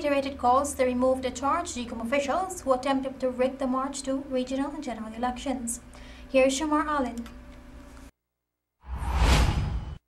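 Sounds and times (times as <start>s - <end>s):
whoosh transition effect: 8.8s - 10.0s.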